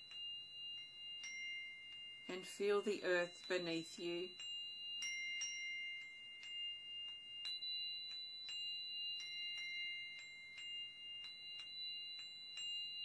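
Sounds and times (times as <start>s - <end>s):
singing bowl ringing tone: 0.0s - 13.0s.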